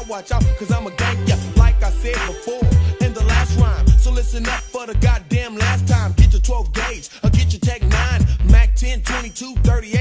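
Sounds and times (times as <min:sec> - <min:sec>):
rapping over a beat: 0:00.0 - 0:10.0
deep bass notes: 0:00.3 - 0:10.0.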